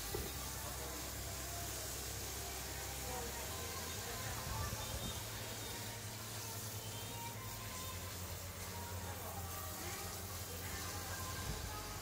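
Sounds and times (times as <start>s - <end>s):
soft background music: 0.0s - 12.0s
water hissing from shower sprayer: 0.0s - 12.0s.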